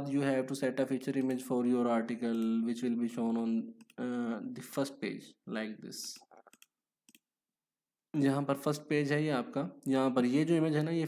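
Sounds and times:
computer mouse clicking: 0:06.1 - 0:07.3.

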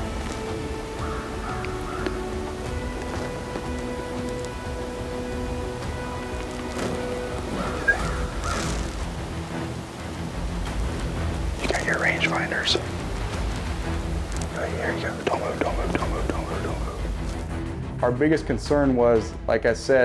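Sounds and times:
slow held-note music: 0:00.0 - 0:18.0
faint voices: 0:11.6 - 0:12.9.

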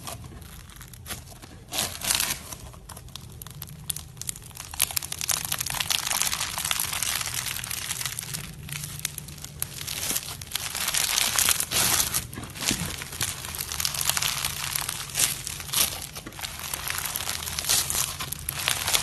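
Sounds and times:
foam bead slime crackling: 0:00.0 - 0:19.0.

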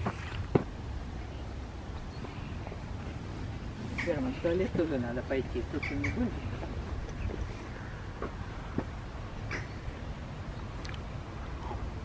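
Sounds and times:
low wind rumble: 0:00.0 - 0:12.0
faint bird calls: 0:03.8 - 0:04.8, 0:05.6 - 0:10.9.

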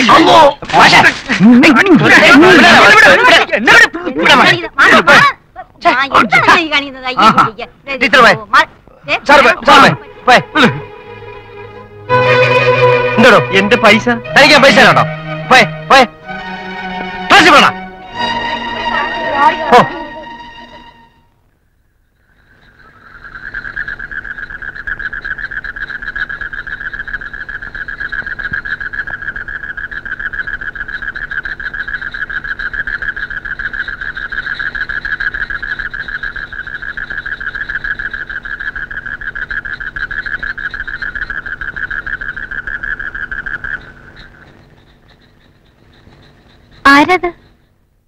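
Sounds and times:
night insects trilling: 0:21.6 - 0:48.0.

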